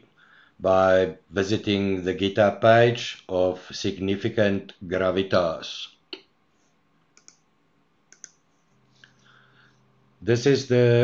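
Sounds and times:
faint low hum: 0:00.0 - 0:11.0
computer mouse clicks: 0:07.1 - 0:07.5, 0:08.1 - 0:08.7.

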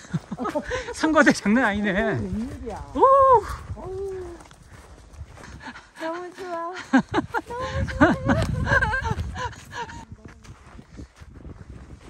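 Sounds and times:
footsteps in snow: 0:00.0 - 0:12.0
low rumble: 0:07.2 - 0:11.7.

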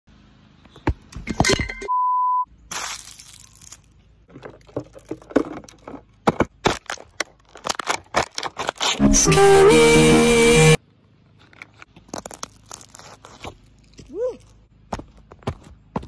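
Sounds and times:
steady beep: 0:01.9 - 0:02.5
plastic bottle crunching underfoot: 0:02.7 - 0:09.0, 0:11.4 - 0:14.6.

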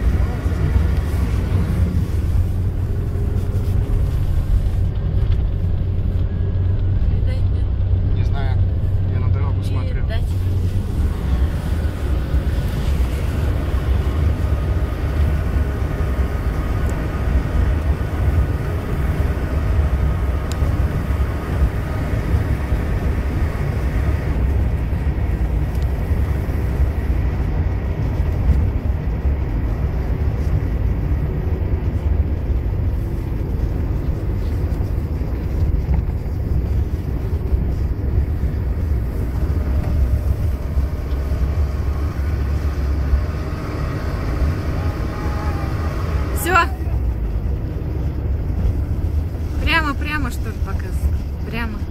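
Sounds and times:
car driving at speed: 0:00.0 - 0:51.9.

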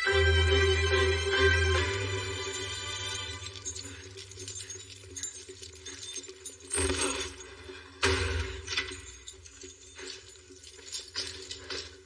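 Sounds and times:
small objects clicking and clinking: 0:02.5 - 0:12.0.

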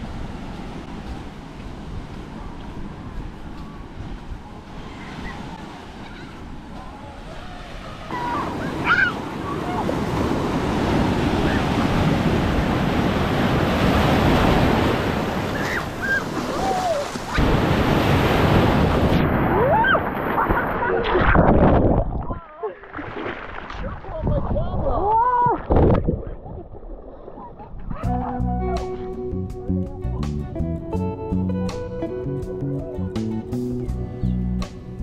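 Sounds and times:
ocean surf breaking: 0:00.0 - 0:22.1
wind buffeting microphone: 0:23.7 - 0:28.1.

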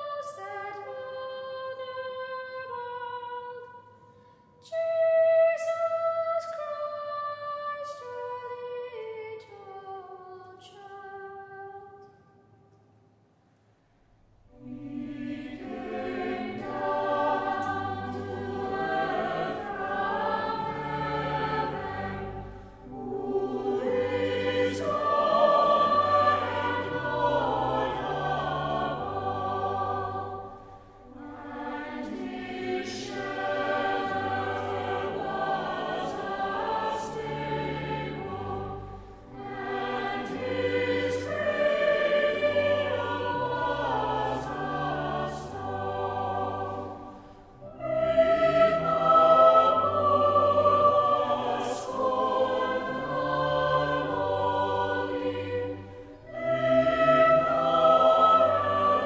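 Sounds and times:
choir singing: 0:00.0 - 0:04.0, 0:04.6 - 0:12.1, 0:14.5 - 0:59.0
low sustained accompaniment: 0:14.5 - 0:59.0.

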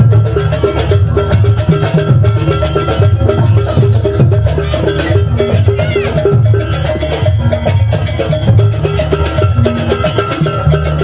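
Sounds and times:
metallic pitched gamelan notes: 0:00.0 - 0:11.0
steady drumming: 0:00.0 - 0:11.0.

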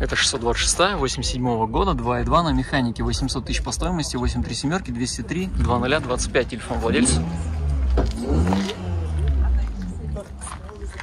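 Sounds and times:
people talking: 0:00.0 - 0:07.6, 0:08.6 - 0:11.0.

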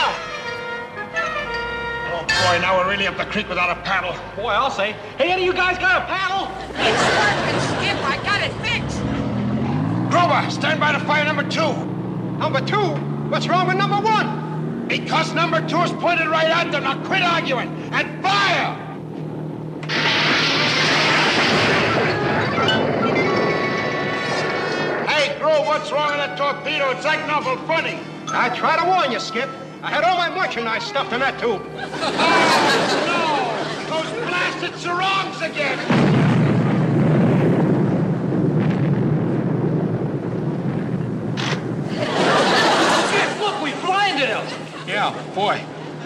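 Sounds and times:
sitcom music: 0:00.0 - 0:04.4, 0:21.6 - 0:35.6
steady low rumble: 0:18.8 - 0:28.8, 0:31.6 - 0:43.7
torpedo launch blast: 0:19.8 - 0:25.5, 0:35.6 - 0:43.4.

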